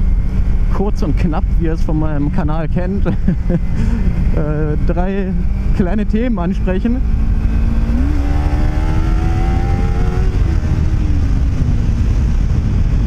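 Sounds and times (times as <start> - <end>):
motorcycle engine accelerating: 0.0 - 13.0
wind rumbling on microphone: 0.0 - 13.0.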